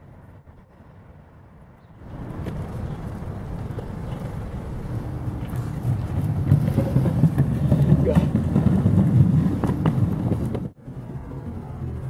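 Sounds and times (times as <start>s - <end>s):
outdoor background: 0.0s - 12.0s
skateboard wheels rolling on concrete: 0.0s - 12.0s.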